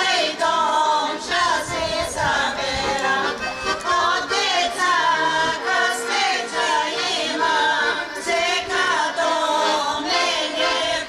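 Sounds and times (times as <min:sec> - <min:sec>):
women singing folk song: 0:00.0 - 0:11.0.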